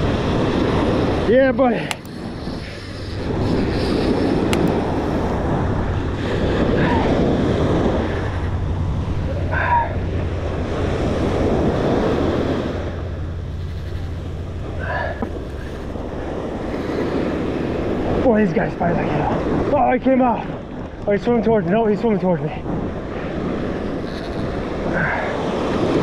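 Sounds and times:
surf washing onto beach: 0.0s - 26.0s
wind buffeting microphone: 0.0s - 26.0s.

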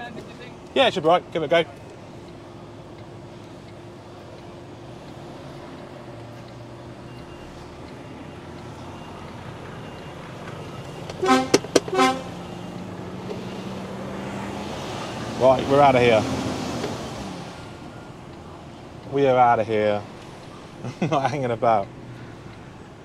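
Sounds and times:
diesel engine idling: 0.0s - 23.0s
vehicle horn toots: 11.2s - 12.6s.

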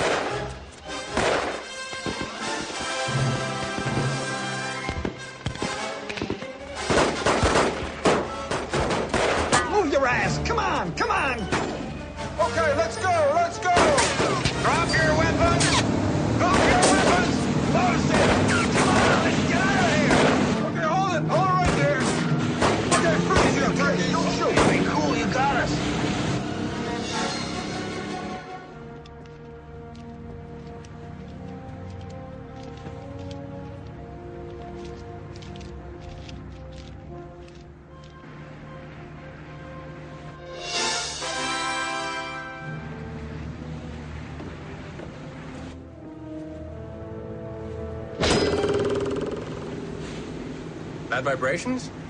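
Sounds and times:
gunshots: 0.0s - 0.5s, 1.1s - 2.2s, 6.8s - 9.7s, 15.6s - 17.4s, 18.0s - 20.7s, 21.5s - 23.8s, 24.4s - 25.1s
orchestral film music: 0.0s - 48.6s.

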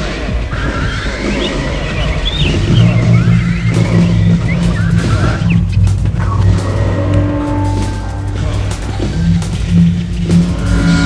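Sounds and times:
dense rumbling bed: 0.0s - 11.0s
low steady drone: 0.0s - 11.0s.

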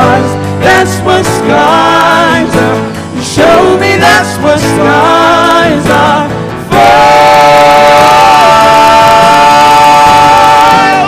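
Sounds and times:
acoustic guitar: 0.0s - 11.0s
drums: 0.0s - 11.0s
keyboard: 0.0s - 11.0s.

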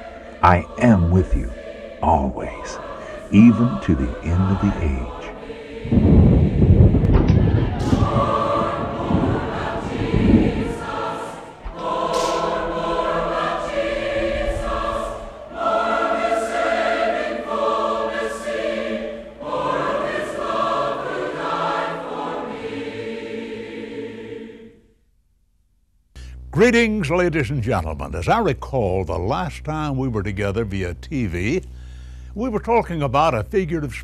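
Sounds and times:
low rumble: 0.0s - 15.5s
choir singing: 0.0s - 24.9s.

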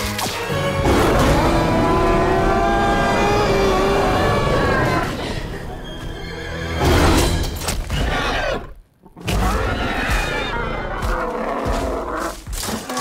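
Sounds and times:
film score music: 0.0s - 13.0s
dinosaur roaring: 0.8s - 5.6s.

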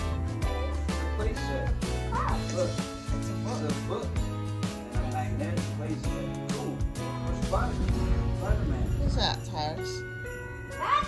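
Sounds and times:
music with steady beat and bass: 0.0s - 11.0s.

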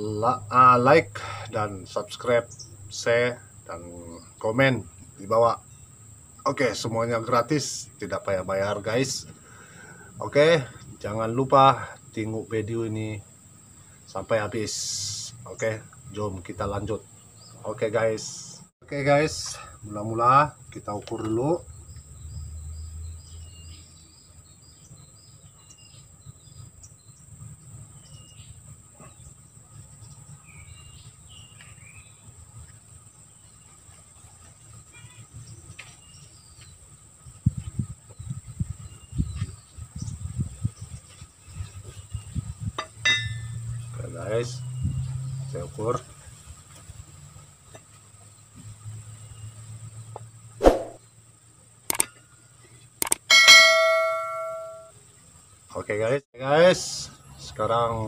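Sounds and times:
blade ringing metallically: 43.1s - 43.6s, 53.3s - 54.9s.

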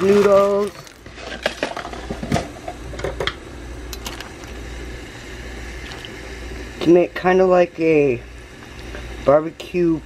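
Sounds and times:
soup bubbling and popping: 5.8s - 6.2s.

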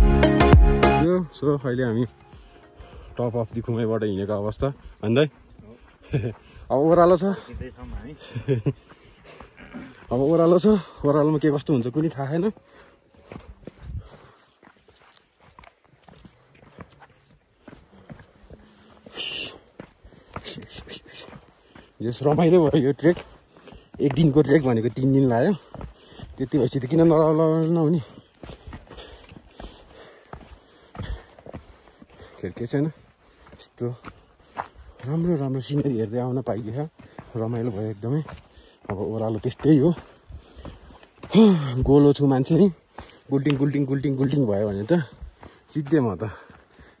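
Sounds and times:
footsteps on dry grass: 1.0s - 47.0s
person speaking: 24.0s - 25.7s, 35.0s - 40.2s, 41.2s - 46.4s.

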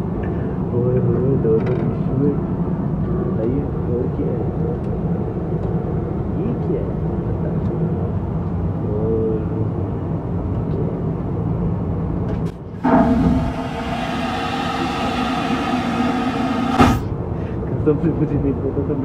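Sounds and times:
airliner cabin drone: 12.7s - 17.6s
vacuum toilet flushing: 12.8s - 17.1s.

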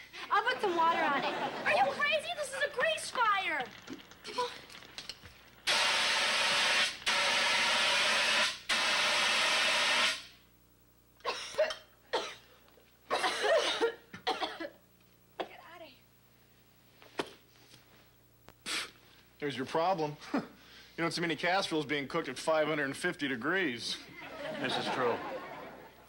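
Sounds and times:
people coughing: 4.2s - 4.6s, 11.2s - 14.8s, 20.2s - 20.6s
fire extinguisher hissing: 5.6s - 10.4s, 18.6s - 19.0s.

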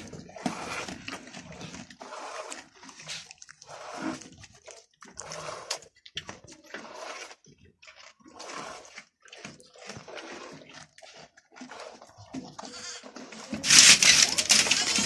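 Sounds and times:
milk squirting into a bucket: 0.0s - 15.0s.

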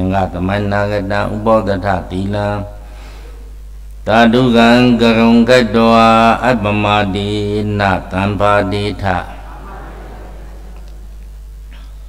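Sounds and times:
man chanting into microphone: 0.0s - 2.8s, 4.0s - 10.1s.

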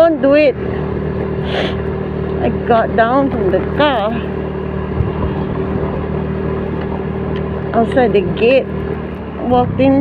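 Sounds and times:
motor scooter engine hum: 0.0s - 10.0s
wind and road noise: 0.0s - 10.0s.

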